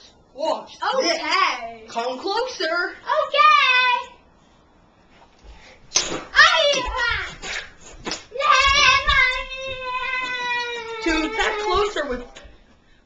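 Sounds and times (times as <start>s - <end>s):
child vocalising: 8.4s - 11.8s.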